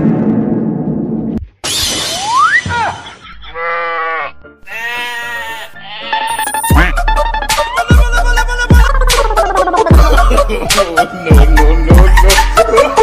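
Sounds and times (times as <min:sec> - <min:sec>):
goat-like bleating cries: 0:03.4 - 0:07.0
electronic music with beat: 0:06.3 - 0:13.0.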